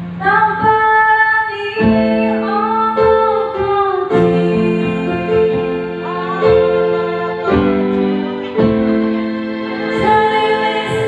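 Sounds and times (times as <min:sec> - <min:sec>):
woman singing into microphone: 0:00.0 - 0:08.6, 0:09.7 - 0:11.0
electronic keyboards playing: 0:00.0 - 0:11.0.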